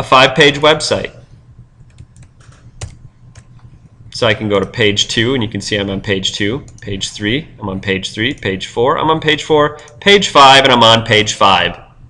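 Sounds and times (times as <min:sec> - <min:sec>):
computer keyboard keystrokes: 0:01.9 - 0:03.5.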